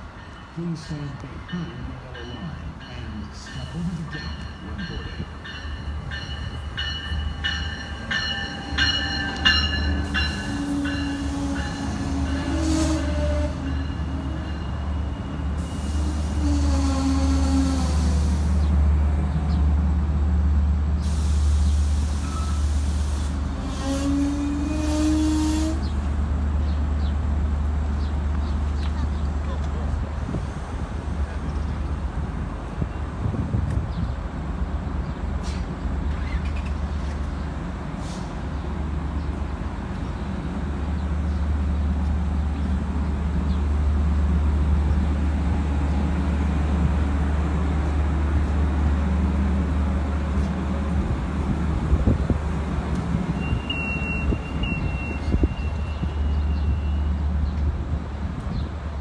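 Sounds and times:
diesel train engine droning: 0:00.0 - 0:59.0.

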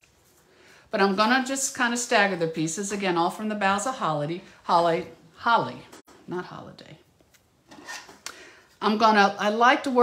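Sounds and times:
woman speaking: 0:00.9 - 0:07.1, 0:08.8 - 0:10.0.

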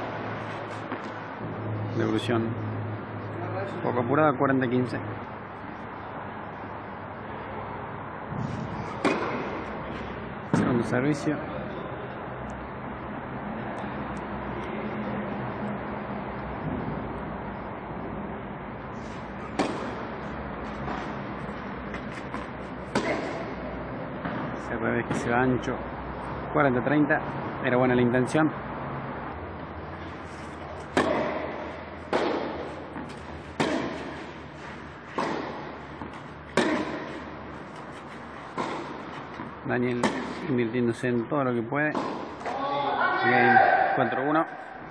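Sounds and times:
tennis ball struck by racket: 0:00.4 - 0:01.6, 0:08.3 - 0:10.8, 0:19.2 - 0:25.2, 0:30.3 - 0:40.5, 0:41.9 - 0:42.6.

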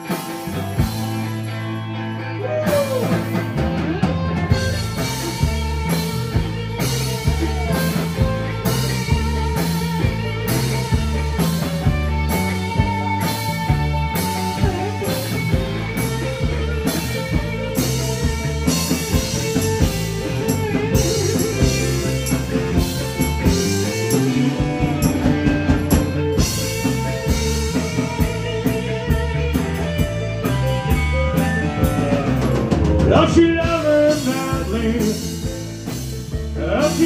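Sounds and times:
drum kit steady beat: 0:00.0 - 0:01.9, 0:02.7 - 0:37.0
electric guitars: 0:00.0 - 0:37.0
keyboard: 0:00.0 - 0:37.0.

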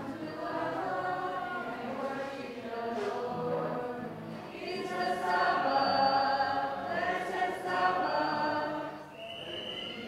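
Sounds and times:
women singing religious song: 0:00.0 - 0:09.2.

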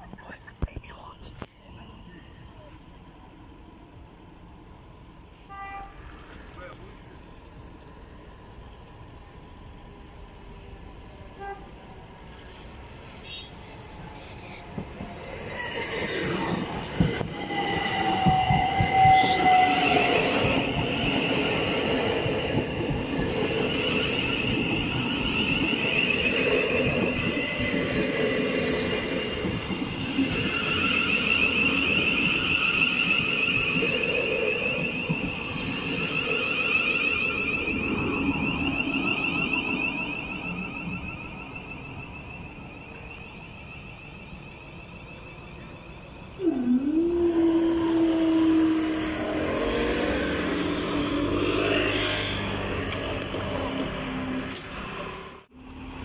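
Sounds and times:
train high whine: 0:01.0 - 0:56.0
train wheels on rails: 0:01.4 - 0:56.0.

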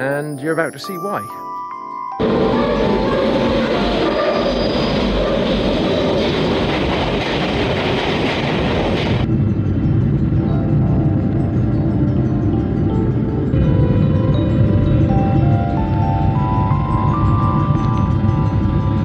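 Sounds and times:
music playing: 0:00.0 - 0:04.7, 0:09.2 - 0:19.0
train rushing noise: 0:02.2 - 0:19.0.

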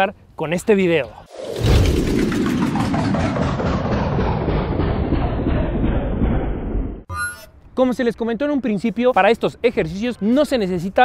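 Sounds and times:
dense rumble: 0:01.3 - 0:07.1.

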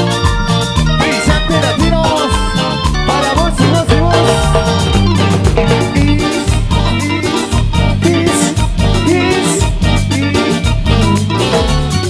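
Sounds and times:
electric bass line: 0:00.0 - 0:12.0
keyboard melody: 0:00.0 - 0:12.0
percussion beat: 0:00.0 - 0:12.0.

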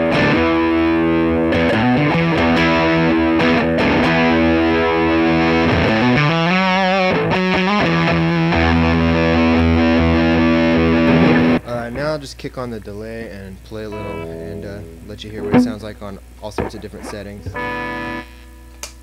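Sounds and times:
fuzz-distorted electric guitar: 0:00.0 - 0:12.0, 0:13.9 - 0:19.0.

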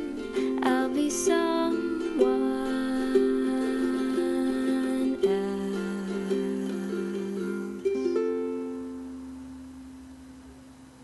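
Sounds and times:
ukulele chord ringing: 0:00.0 - 0:10.6.

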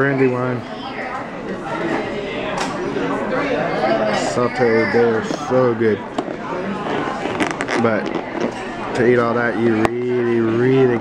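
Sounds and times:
restaurant chatter: 0:00.0 - 0:11.0.

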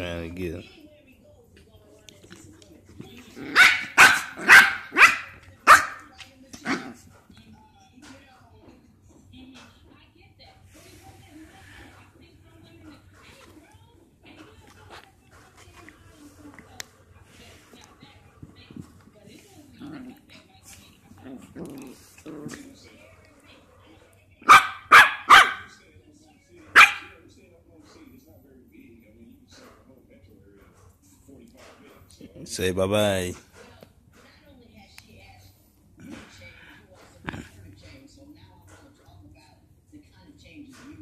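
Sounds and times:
puppies barking: 0:03.4 - 0:06.1, 0:24.4 - 0:25.7, 0:26.8 - 0:27.1
puppies growling: 0:18.8 - 0:23.0, 0:36.0 - 0:37.7.

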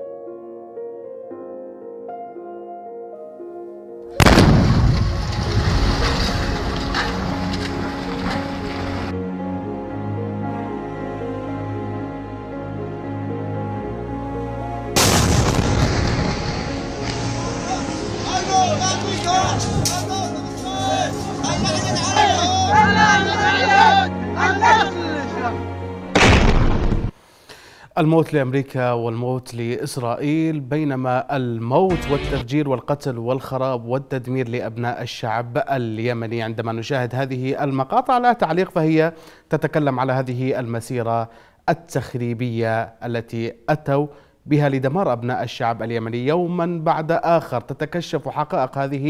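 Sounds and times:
soft background music: 0:00.0 - 0:04.3, 0:05.1 - 0:26.2, 0:29.5 - 0:38.8
explosion blast and rumble: 0:04.2 - 0:07.1, 0:15.0 - 0:18.3, 0:26.2 - 0:27.1
sharp cracks: 0:04.2 - 0:07.8, 0:26.2 - 0:27.1.

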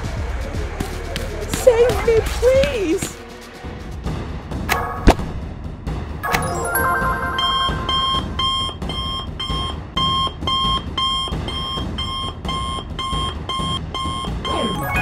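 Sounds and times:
background music: 0:00.0 - 0:15.0
two-tone electronic alarm beeps: 0:06.9 - 0:15.0.

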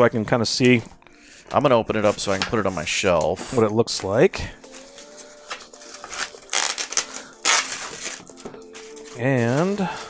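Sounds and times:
cardboard packaging rustling: 0:04.6 - 0:10.0.

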